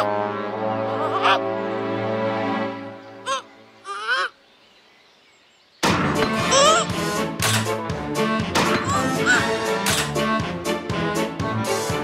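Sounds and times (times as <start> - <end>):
wavering honk-like squeak: 8.8 - 10.1.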